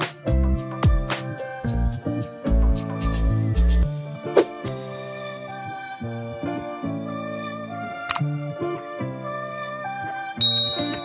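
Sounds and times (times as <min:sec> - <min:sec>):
background music low notes: 0:00.0 - 0:11.0
bright bell ding: 0:10.4 - 0:11.0.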